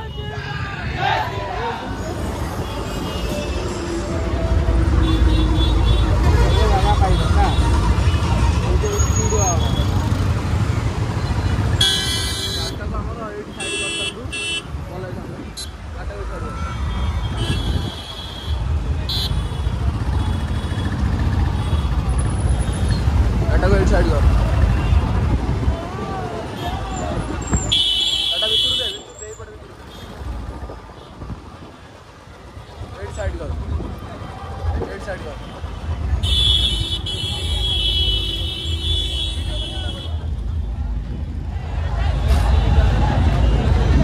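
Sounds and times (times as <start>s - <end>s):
street noise: 0.0s - 44.0s
traffic rumble: 0.0s - 44.0s
voices: 0.0s - 44.0s
vehicle horn honking: 11.8s - 12.8s.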